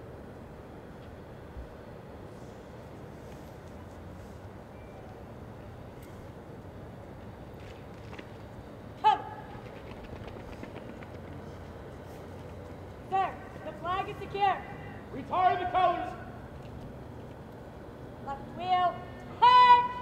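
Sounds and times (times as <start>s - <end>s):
open-air background noise: 0.0s - 20.0s
shouted drill commands: 9.0s - 9.5s, 13.0s - 16.4s, 18.3s - 20.0s.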